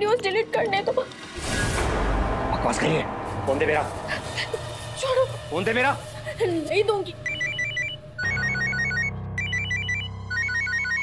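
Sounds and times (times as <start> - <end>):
low background score: 0.0 - 10.3
phone ringtone beeps: 7.2 - 11.0.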